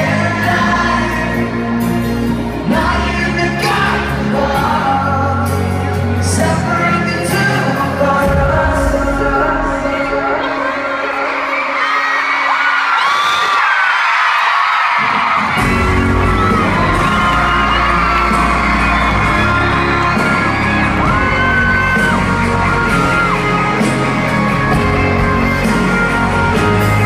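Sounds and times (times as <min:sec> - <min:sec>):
crowd screaming and singing along: 0:00.0 - 0:27.0
live pop band performing: 0:00.0 - 0:27.0.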